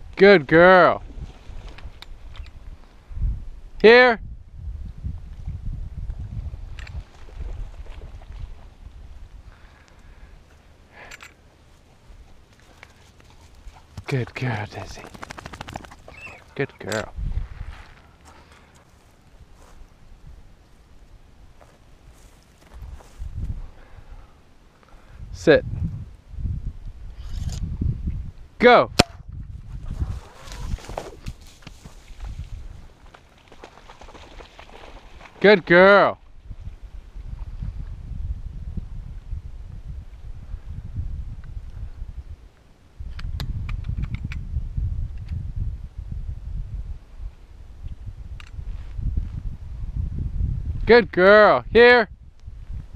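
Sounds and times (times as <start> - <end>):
wind rumble on microphone: 1.0 - 10.4, 14.8 - 18.1, 19.2 - 24.3, 25.0 - 35.4, 36.2 - 52.9
footfalls on dry ground: 21.6 - 23.5, 29.9 - 35.3.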